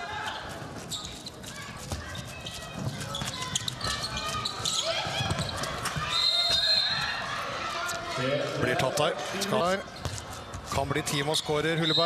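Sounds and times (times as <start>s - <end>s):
ball bouncing on court floor: 5.0s - 6.1s.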